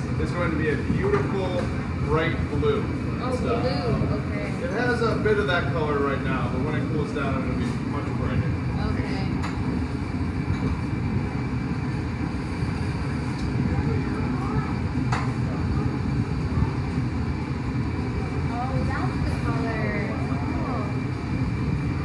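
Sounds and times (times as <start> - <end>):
gas burners roaring: 0.0 - 22.0.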